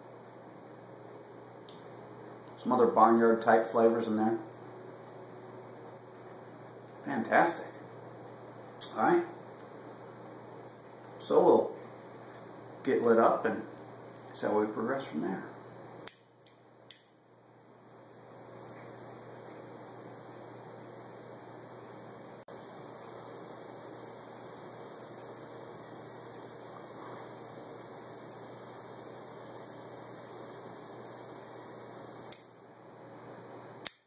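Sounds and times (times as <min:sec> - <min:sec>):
lighter ignition clicks: 0:16.0 - 0:17.1, 0:30.8 - 0:32.6
torch flame jet hissing: 0:18.0 - 0:32.6.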